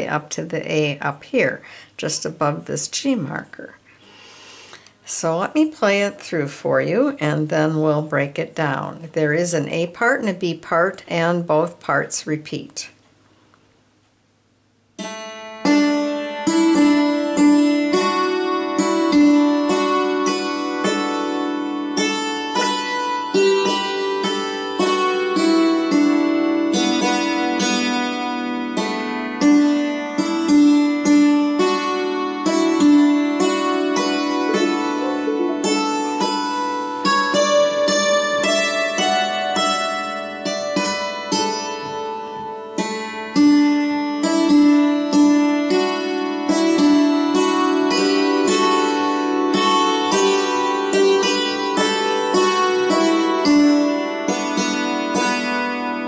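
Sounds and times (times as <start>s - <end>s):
hammered dulcimer waltz: 15.0s - 56.0s.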